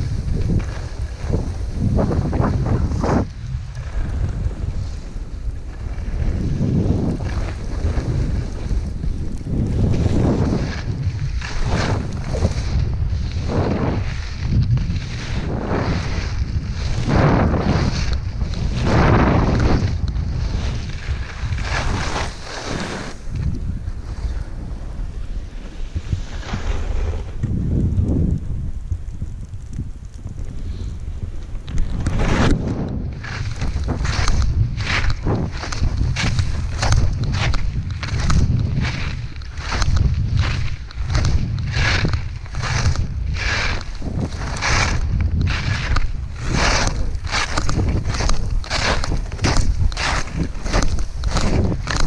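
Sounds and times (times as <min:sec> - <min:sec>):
wind rumble on microphone: 0:00.0 - 0:52.0
skis hissing on snow: 0:09.6 - 0:27.4, 0:38.1 - 0:52.0.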